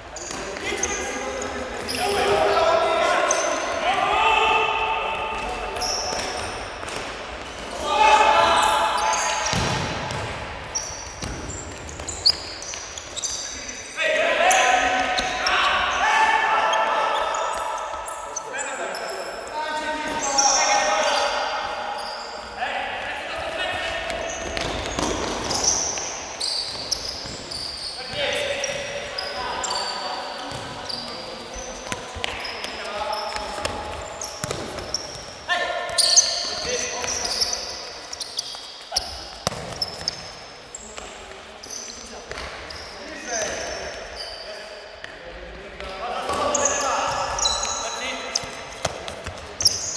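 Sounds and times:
sneakers squeaking on court floor: 0:00.0 - 0:03.8, 0:05.1 - 0:16.0, 0:16.6 - 0:45.1, 0:45.8 - 0:49.9.

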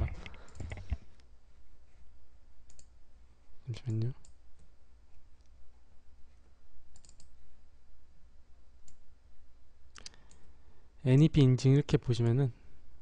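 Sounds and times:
faint low hum: 0:00.0 - 0:13.0
computer mouse clicks: 0:00.2 - 0:01.0, 0:02.7 - 0:02.9, 0:06.9 - 0:07.4, 0:08.8 - 0:09.0.

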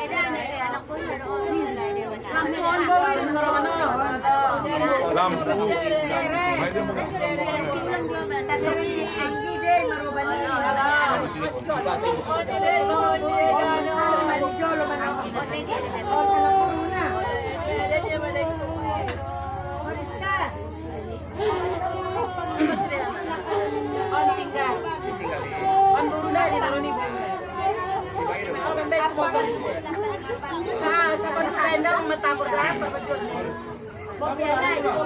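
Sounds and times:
overlapping voices chattering: 0:00.0 - 0:35.0
people talking over one another: 0:00.0 - 0:35.0.

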